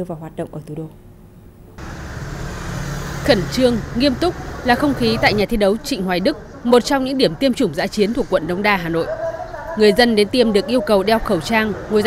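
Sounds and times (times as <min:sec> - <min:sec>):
street traffic: 0:01.6 - 0:12.0
motorbike engine passing: 0:01.8 - 0:12.0.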